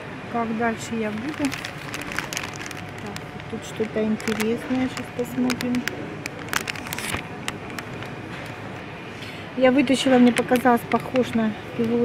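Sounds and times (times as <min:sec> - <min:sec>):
indoor store hum: 0:00.0 - 0:12.0
plastic sleeves crinkling: 0:00.7 - 0:08.8.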